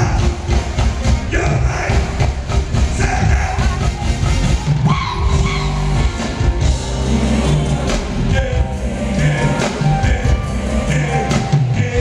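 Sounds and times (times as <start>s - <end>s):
live band with strong bass: 0.0s - 12.0s
man singing: 1.2s - 3.8s, 7.1s - 12.0s.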